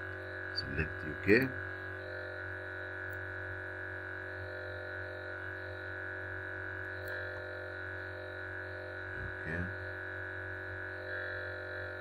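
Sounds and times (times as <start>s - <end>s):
steady electronic hum: 0.0s - 12.0s.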